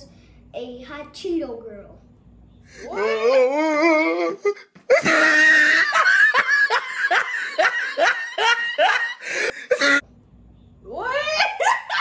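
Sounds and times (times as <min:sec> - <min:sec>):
high-pitched laughing: 0:02.8 - 0:10.0, 0:11.1 - 0:12.0.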